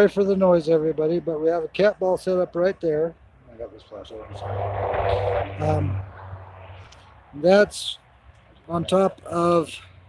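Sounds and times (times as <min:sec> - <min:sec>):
distant trucks droning: 0:03.5 - 0:10.0.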